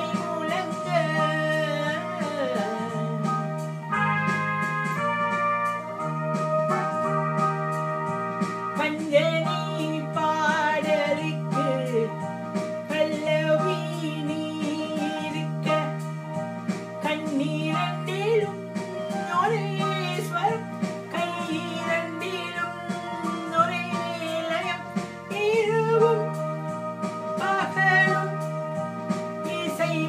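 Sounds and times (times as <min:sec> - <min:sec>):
person singing: 0:00.0 - 0:03.7, 0:08.8 - 0:16.2, 0:17.0 - 0:26.5, 0:27.3 - 0:28.7, 0:29.4 - 0:30.0
electronic keyboard melody: 0:00.0 - 0:30.0.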